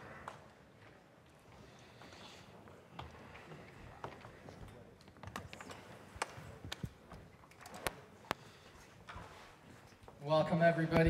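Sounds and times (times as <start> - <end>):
low room murmur: 0.0 - 11.0.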